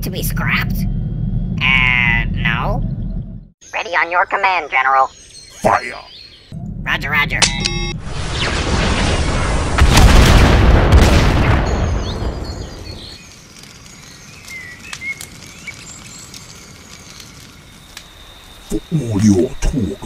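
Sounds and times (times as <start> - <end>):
faint chirping ambience: 0.1 - 8.0, 11.5 - 20.0
deep rolling explosion: 8.0 - 13.2.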